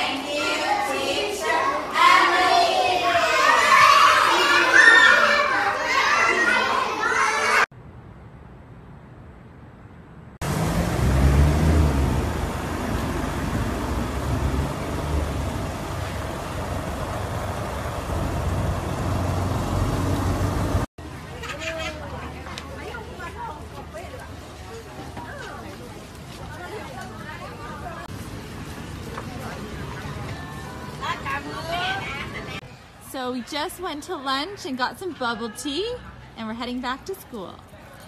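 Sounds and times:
young children talking and calling out: 0.0s - 7.7s, 21.0s - 28.1s
low rumble of traffic: 0.0s - 38.0s.

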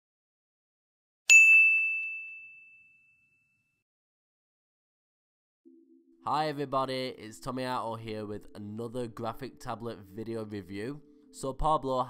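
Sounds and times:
bell-like ding: 1.3s - 3.7s.

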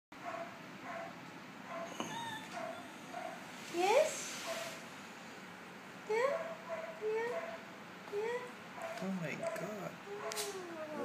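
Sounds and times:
dog whining: 1.7s - 3.4s, 8.2s - 11.0s.

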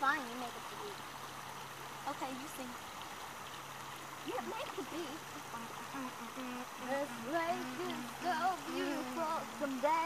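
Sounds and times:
water rushing on shore: 0.0s - 10.0s
girl humming: 5.6s - 10.0s.

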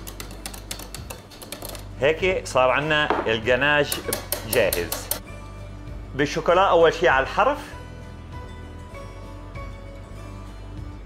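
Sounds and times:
whisk clicking against saucepan: 0.0s - 1.8s, 3.8s - 5.2s.

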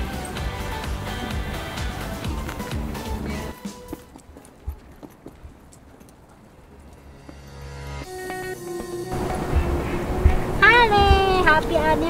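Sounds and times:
music: 0.0s - 4.2s, 6.9s - 12.0s
footsteps on pavement: 0.0s - 11.6s.

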